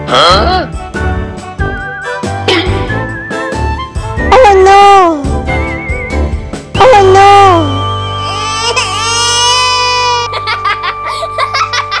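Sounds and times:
background music: 0.0 - 12.0
wavering crying wail: 8.2 - 11.0.

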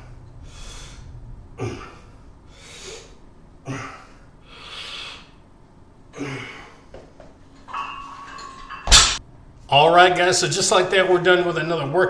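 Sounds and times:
weight bar clanking on floor: 7.6 - 9.2.

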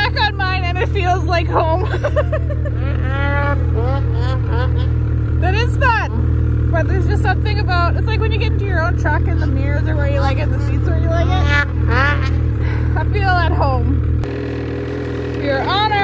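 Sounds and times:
voices talking: 0.0 - 14.1, 15.3 - 16.0
snowmobile engine idling: 0.0 - 16.0.

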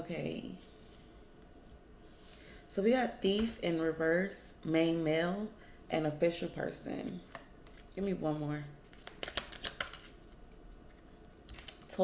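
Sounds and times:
cards being handled: 7.3 - 8.0, 8.8 - 11.9.

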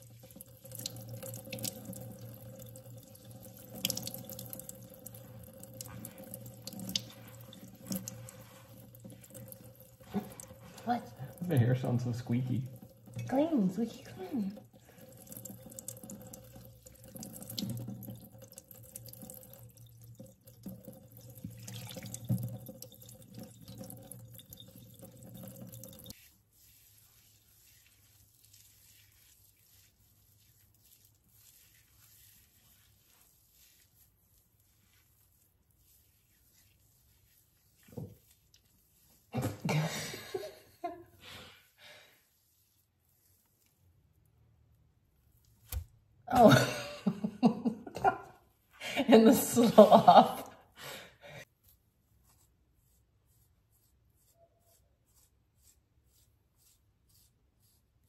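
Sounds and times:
water pouring and splashing in sink: 0.0 - 40.7
squeaky rubbing of wet hair: 26.1 - 39.6, 52.1 - 58.0.

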